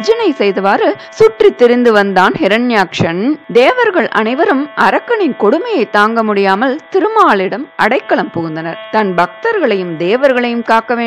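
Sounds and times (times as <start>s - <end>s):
faint steady background tone: 0.0s - 11.0s
person narrating: 0.0s - 11.0s.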